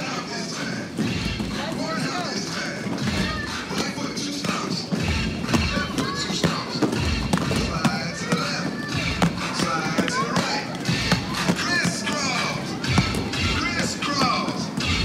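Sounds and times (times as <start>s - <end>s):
background music: 0.0s - 15.0s
children chattering and calling: 0.0s - 15.0s
roller skates clacking on wood: 0.0s - 15.0s.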